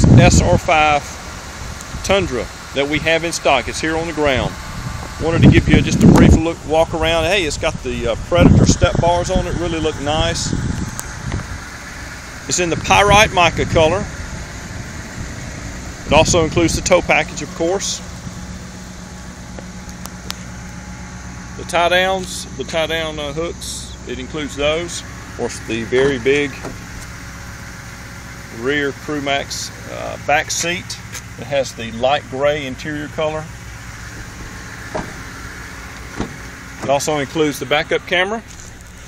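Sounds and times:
outdoor background noise: 0:00.0 - 0:39.0
steady low rumble: 0:00.0 - 0:39.0
vehicle engine idling: 0:00.0 - 0:39.0
car door handle clicks: 0:34.9 - 0:35.3, 0:36.0 - 0:36.9.

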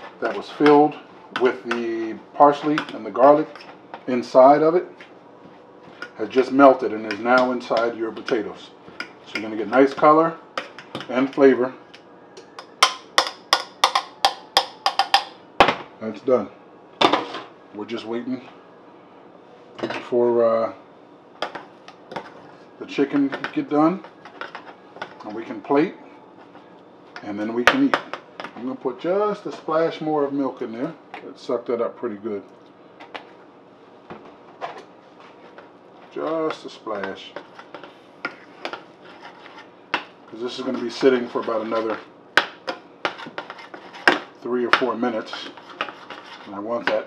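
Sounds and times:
utensil knocking on saucepan: 0:12.6 - 0:15.4.

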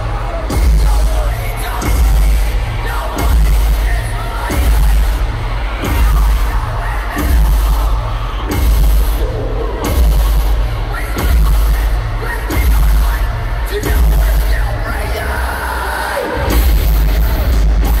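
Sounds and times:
pounding bass hits: 0:00.0 - 0:14.5
live heavy band music: 0:00.0 - 0:18.0.

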